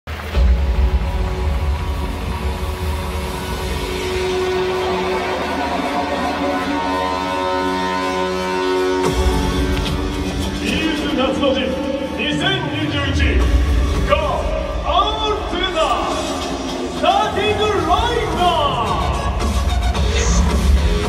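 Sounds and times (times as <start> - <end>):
synth music over loudspeakers: 0.1 - 21.0.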